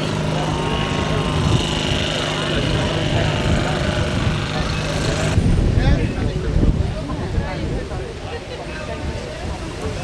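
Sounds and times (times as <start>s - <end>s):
steady hum: 0.0s - 5.6s
wind rumbling on microphone: 0.0s - 10.0s.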